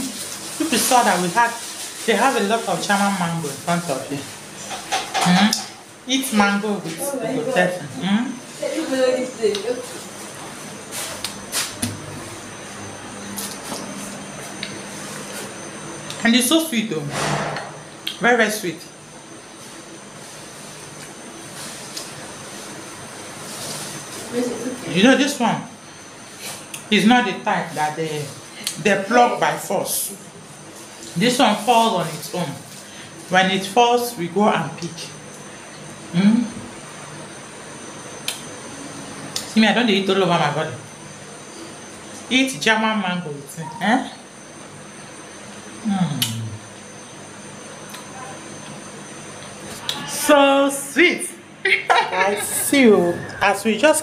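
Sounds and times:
fan-like hiss: 0.0s - 4.8s
steady low hum: 0.0s - 54.0s
thin high whine: 0.0s - 54.0s
wet mouth smack: 46.2s - 46.4s.

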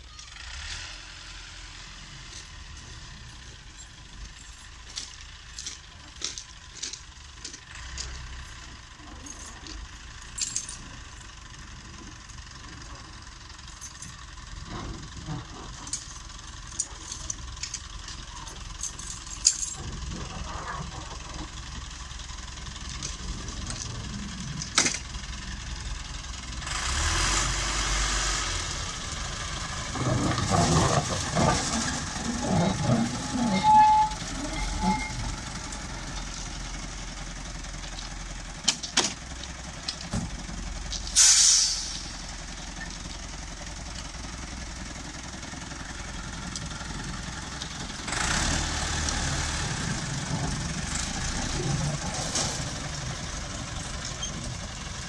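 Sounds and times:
diesel locomotive engine rumble: 0.0s - 55.0s
clattering on track: 3.4s - 26.9s, 29.0s - 55.0s
hiss bursts: 41.1s - 42.2s.

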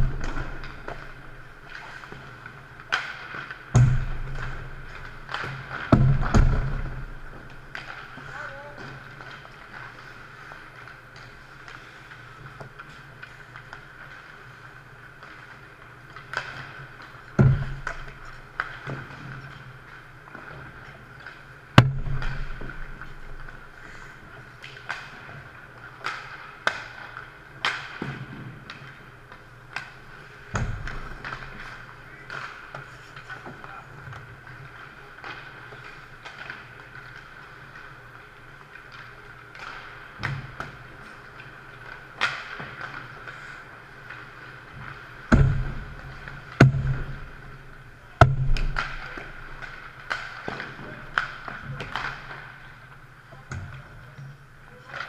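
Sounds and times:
steady hum: 0.0s - 54.9s
hockey sticks striking pucks: 0.0s - 55.0s
pucks hitting boards and net: 0.0s - 55.0s
heavy thuds: 45.3s - 47.3s.

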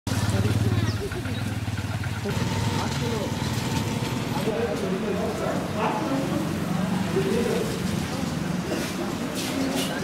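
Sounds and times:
people talking: 0.1s - 3.5s, 4.2s - 10.0s
engine idling: 0.1s - 7.6s.

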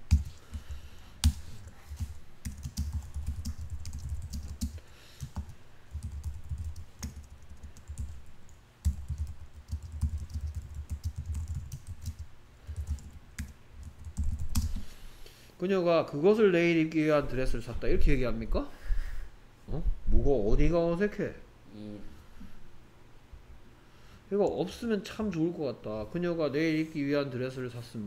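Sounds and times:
loud keyboard clicks: 0.0s - 8.2s, 8.8s - 14.9s
typing on computer keyboard: 0.0s - 14.9s.

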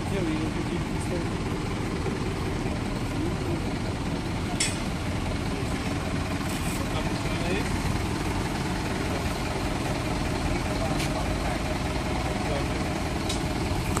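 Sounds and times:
truck engine idling: 0.0s - 14.0s.

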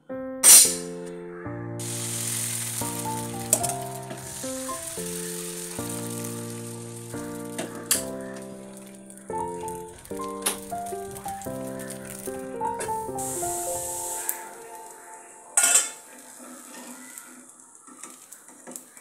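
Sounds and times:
keyboard chords music: 0.0s - 16.3s
batter sizzling in pan: 1.8s - 18.9s.

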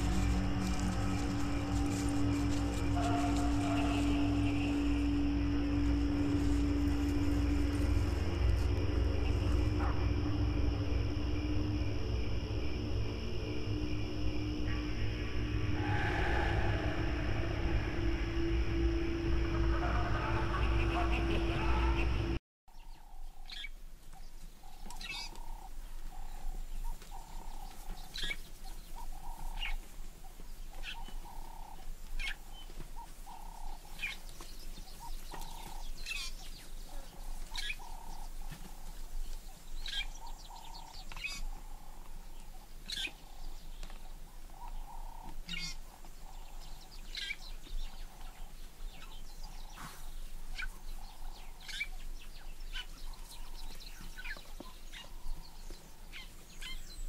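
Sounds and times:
pulsing mid-pitched call: 0.0s - 22.4s
steady low hum: 0.0s - 22.4s
birds chirping: 0.0s - 57.0s.

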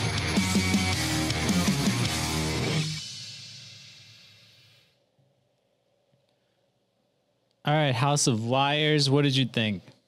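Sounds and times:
heavy rock with distorted guitar: 0.0s - 3.1s.

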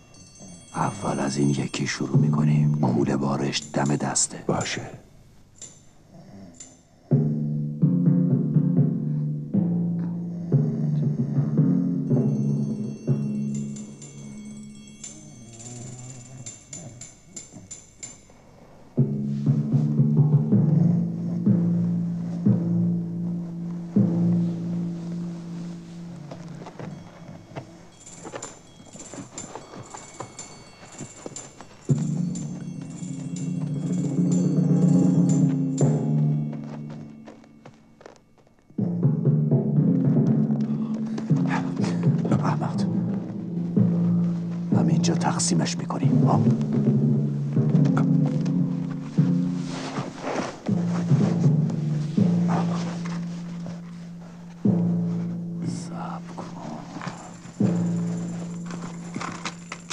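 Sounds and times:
high tinkling notes: 0.0s - 7.1s, 12.0s - 20.2s, 21.2s - 59.9s
low sustained music line: 6.6s - 59.9s
drum rolls: 19.0s - 27.2s, 31.8s - 37.6s, 38.7s - 59.9s.

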